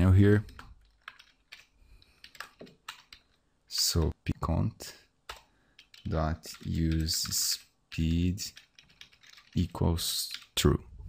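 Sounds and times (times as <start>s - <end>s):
computer keyboard typing: 0.3s - 4.2s, 5.3s - 10.6s.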